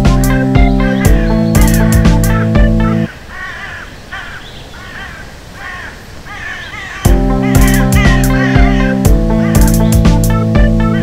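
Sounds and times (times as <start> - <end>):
bird calling: 0.0 - 11.0.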